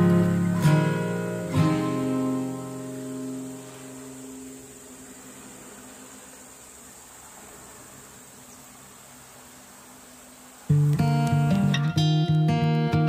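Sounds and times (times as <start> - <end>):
guitar notes: 0.0 - 5.1, 10.7 - 13.0
high insect drone: 0.0 - 13.0
soft hiss: 0.0 - 13.0.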